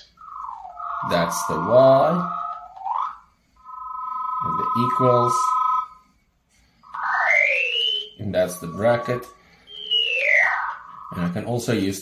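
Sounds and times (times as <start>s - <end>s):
synthesized sliding tones: 0.0s - 11.8s.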